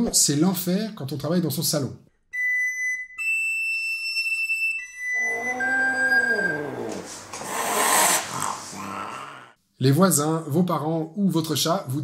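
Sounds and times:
recorder playing high notes: 0:02.4 - 0:07.0
cat yowling: 0:05.2 - 0:09.5.

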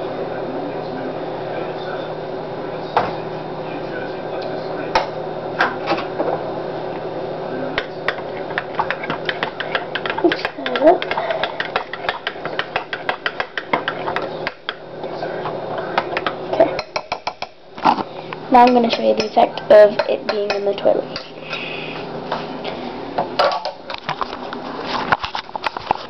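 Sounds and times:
spoon stirring in a bowl: 0:07.8 - 0:18.0, 0:18.6 - 0:21.6.

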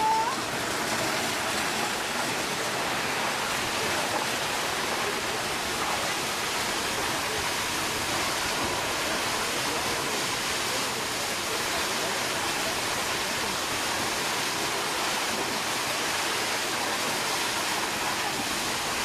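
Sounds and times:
water jets crashing down: 0:00.0 - 0:19.0.

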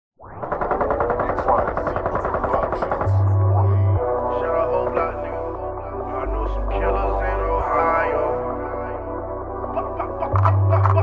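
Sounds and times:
deep bass note: 0:02.8 - 0:09.6.

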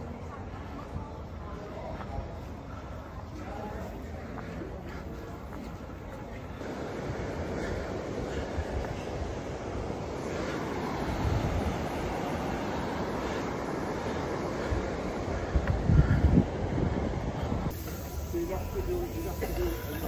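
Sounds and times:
road traffic: 0:00.0 - 0:20.0
wind on microphone: 0:06.6 - 0:18.3.

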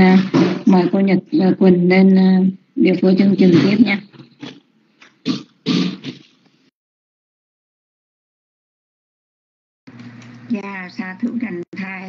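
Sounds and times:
person clearing throat: 0:04.4 - 0:04.6, 0:05.2 - 0:06.4.

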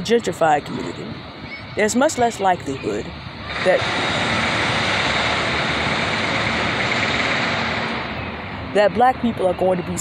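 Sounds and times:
vehicle passing close by: 0:03.5 - 0:08.5.

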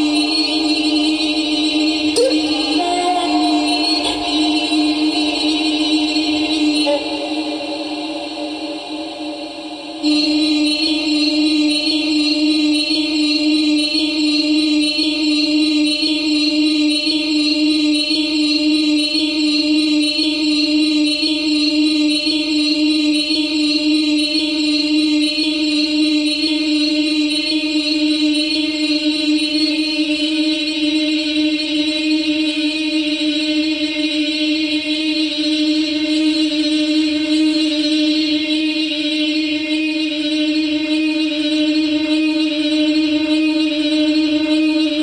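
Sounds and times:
granular vocal drone: 0:00.0 - 0:12.2.

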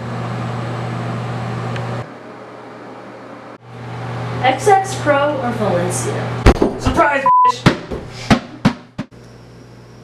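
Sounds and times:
exhaust fan humming: 0:00.0 - 0:10.0.

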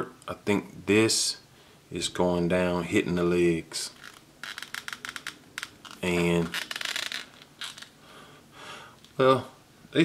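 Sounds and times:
plastic toy joint creaking: 0:04.0 - 0:07.9.

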